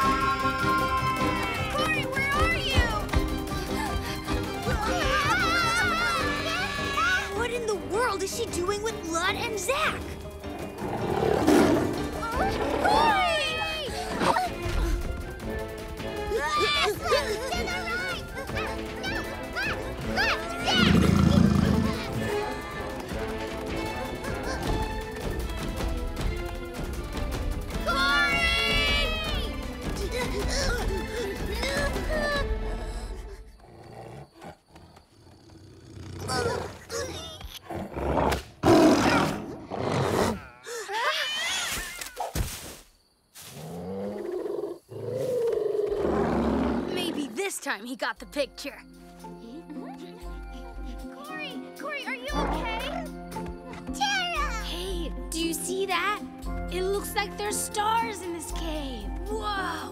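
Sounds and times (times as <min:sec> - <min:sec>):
background music with whistle-like notes: 0:00.0 - 0:21.0
big cat growling: 0:10.8 - 0:13.1, 0:20.8 - 0:22.2, 0:33.5 - 0:40.6, 0:43.7 - 0:47.4.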